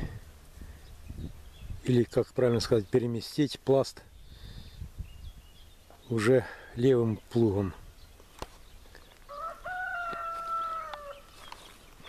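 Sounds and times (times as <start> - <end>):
rooster crowing: 9.3 - 11.4.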